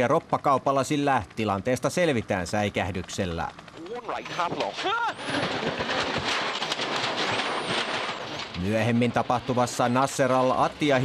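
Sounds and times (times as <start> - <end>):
car crashing over rough ground: 4.2 - 11.0.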